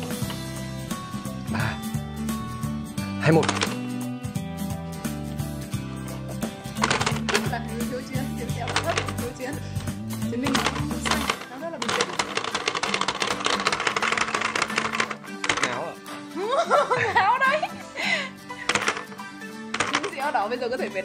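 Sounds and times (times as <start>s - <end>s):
background music: 0.0s - 21.0s
plastic toy clicking and tapping: 3.4s - 3.8s, 6.8s - 7.6s, 8.4s - 9.4s, 10.4s - 15.8s, 18.7s - 19.1s, 19.7s - 20.3s.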